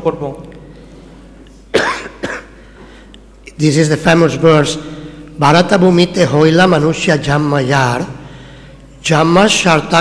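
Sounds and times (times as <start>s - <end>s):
man coughing: 1.7s - 2.6s.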